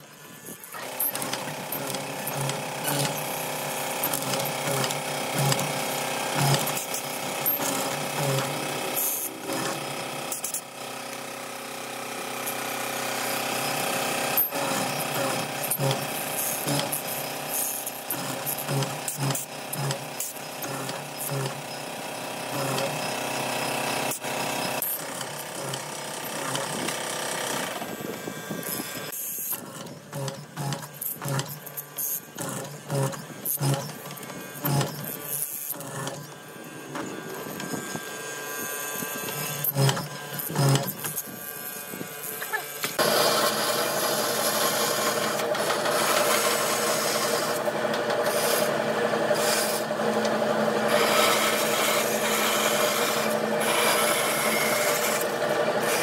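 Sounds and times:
mortising machine motor whine: 0:00.0 - 0:56.0.

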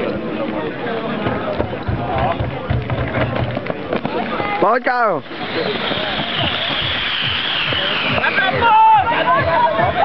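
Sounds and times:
spectators shouting and cheering: 0:00.0 - 0:10.0
steady rushing hiss: 0:01.6 - 0:10.0.

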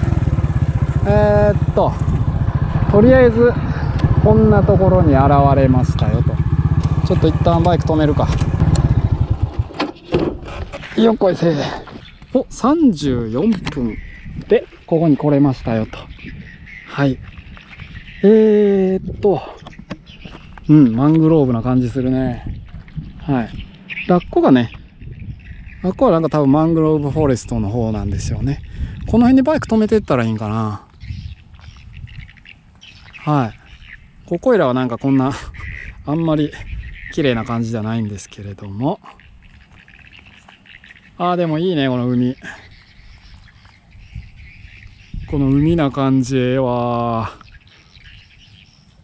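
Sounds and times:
motorbike engine idling: 0:00.0 - 0:11.1
birds chirping: 0:00.0 - 0:49.0
knocks of bike being parked: 0:06.7 - 0:11.1.

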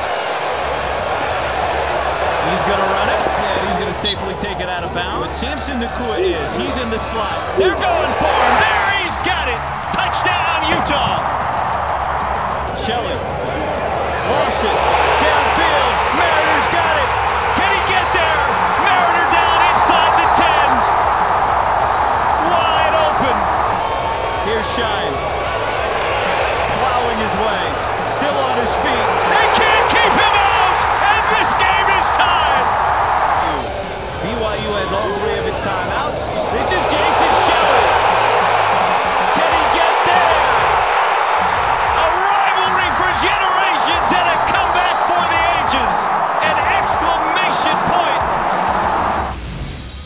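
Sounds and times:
stadium crowd cheering: 0:00.0 - 0:50.0.

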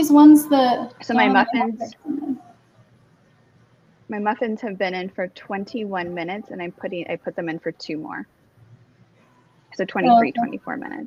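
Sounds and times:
woman humming: 0:01.1 - 0:02.4, 0:10.0 - 0:10.6.

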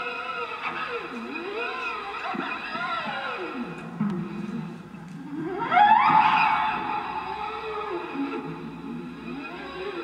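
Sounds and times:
gliding pitched tone: 0:04.3 - 0:10.0.

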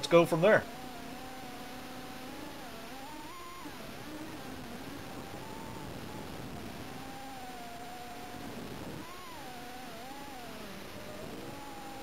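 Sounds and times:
quadcopter motors whining: 0:00.0 - 0:12.0.

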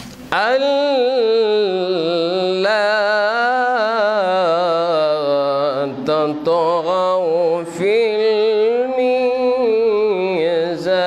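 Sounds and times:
man chanting melodically: 0:00.3 - 0:11.0.

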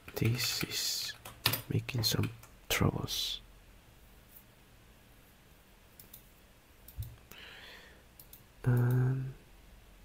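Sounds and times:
computer mouse and keyboard clicks: 0:06.0 - 0:06.3.

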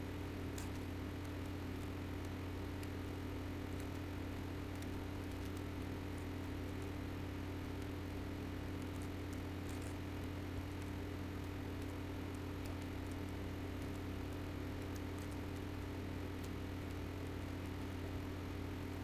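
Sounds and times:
steady low hum: 0:00.0 - 0:19.0
faint ticks: 0:00.5 - 0:03.0, 0:03.7 - 0:18.2.

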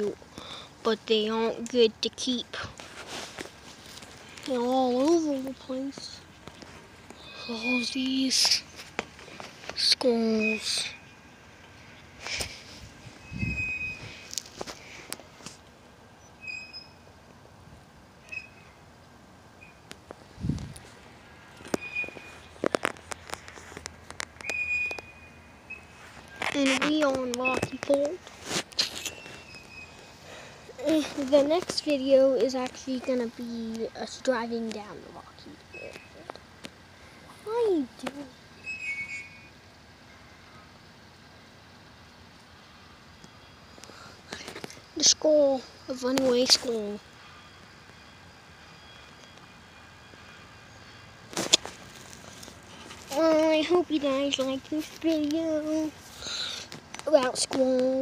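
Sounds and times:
faint low outdoor rumble: 0:00.0 - 0:58.0.

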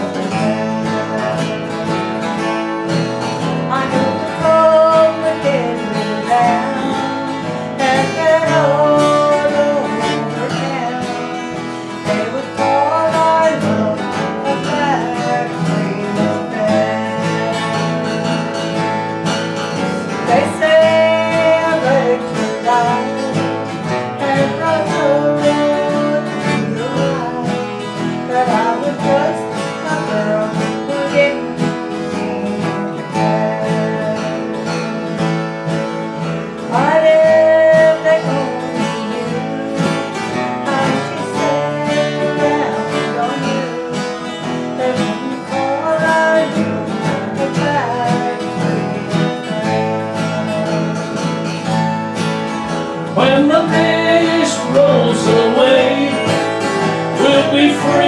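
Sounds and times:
acoustic guitar chords: 0:00.0 - 0:58.0
sliding guitar melody: 0:00.0 - 0:58.0.

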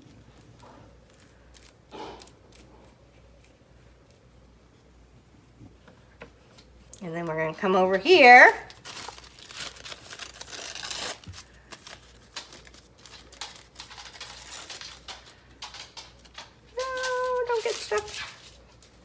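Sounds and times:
tissue paper rustling and tearing: 0:08.1 - 0:15.4, 0:16.2 - 0:19.0.

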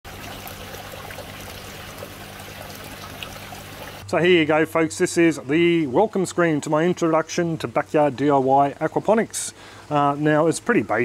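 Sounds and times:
water trickling into tank: 0:00.0 - 0:04.0.

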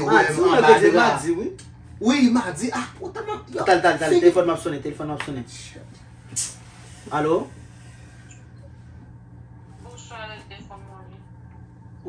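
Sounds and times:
low hum: 0:00.0 - 0:12.0
woman speaking over phone speaker: 0:09.8 - 0:11.3.

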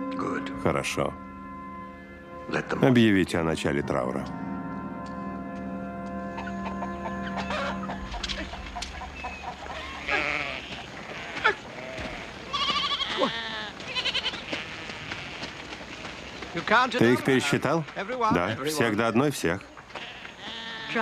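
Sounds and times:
held music notes: 0:00.0 - 0:13.3
flock bleating: 0:09.8 - 0:16.2, 0:17.0 - 0:18.9, 0:19.9 - 0:21.0.

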